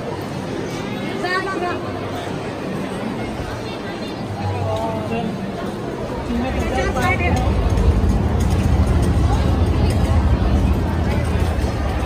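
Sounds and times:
crowd talking: 0.0 - 12.0
low rumble: 6.3 - 12.0.

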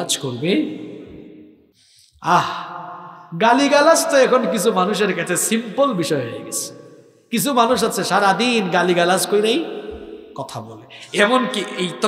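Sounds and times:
breath: 1.7 - 2.8, 6.9 - 7.3, 10.9 - 11.2
man chanting with echo: 2.2 - 12.0.

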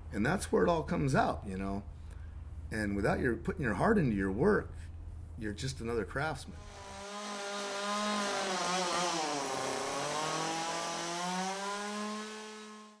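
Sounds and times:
chainsaw cutting wood: 6.6 - 13.0.

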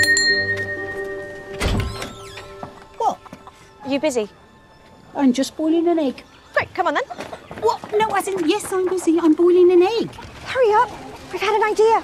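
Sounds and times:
door bell ringing: 0.0 - 2.9
music: 0.0 - 9.4
door thunk: 1.6 - 2.8.

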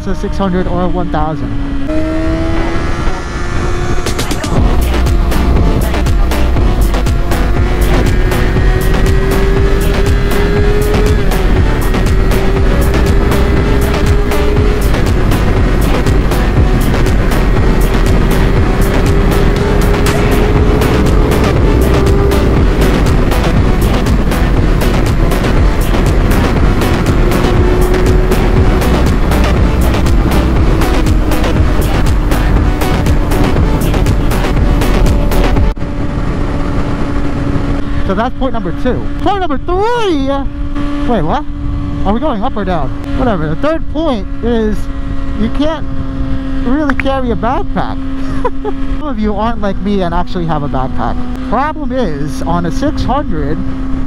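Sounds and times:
motorcycle engine cruising: 0.0 - 54.0
wind noise: 0.0 - 54.0
electronic music with fast beat: 4.0 - 35.8.

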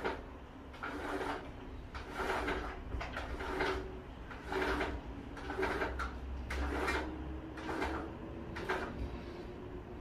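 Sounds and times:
roller blind scraping: 0.0 - 9.5.

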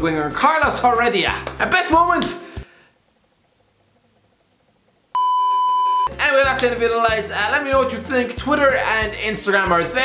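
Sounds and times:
censor bleep tone: 5.2 - 6.1.

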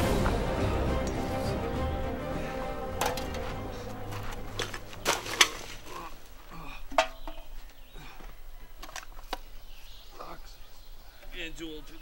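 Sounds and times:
music: 0.0 - 5.6
empty cans clinking on ground: 3.0 - 5.8, 6.9 - 7.5.

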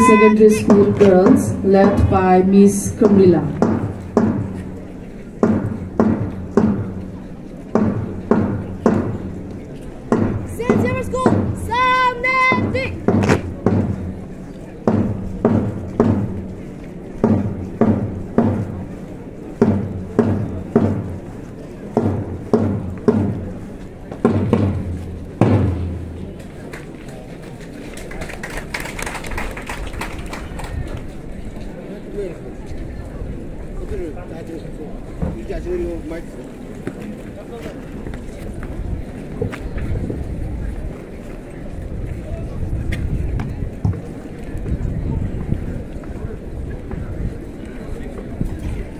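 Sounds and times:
short high-pitched call: 0.0 - 0.4
marching drum beating: 0.0 - 9.5, 10.1 - 26.7.

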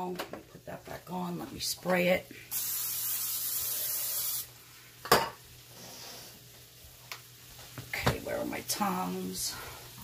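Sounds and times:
oiled pan sizzling: 0.0 - 10.0
cooking spray hissing: 1.2 - 10.0.

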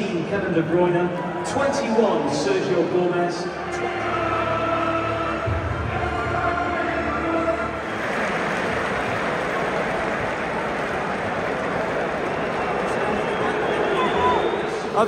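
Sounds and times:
stadium crowd roar: 0.0 - 15.0
stadium music: 0.0 - 15.0.

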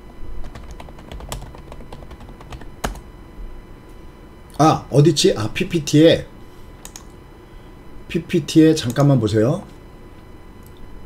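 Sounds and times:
computer keyboard typing: 0.4 - 3.0, 6.8 - 7.1.

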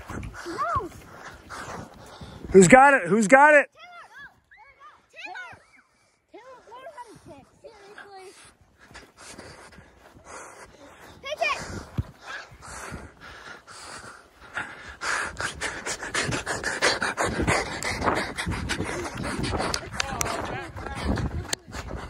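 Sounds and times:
person panting: 0.0 - 2.7, 5.9 - 22.0.

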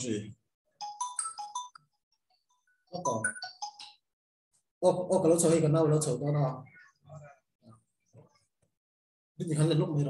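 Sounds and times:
phone ringtone melody: 0.8 - 4.0.

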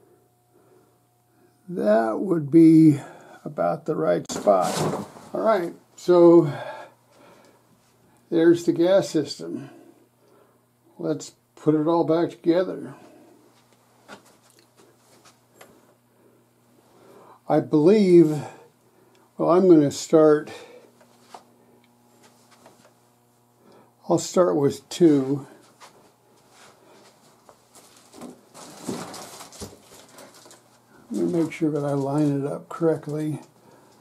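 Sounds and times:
faint low hum: 0.0 - 34.0.

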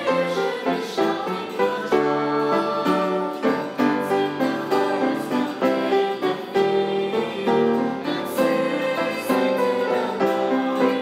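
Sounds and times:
female choir singing: 0.0 - 11.0.

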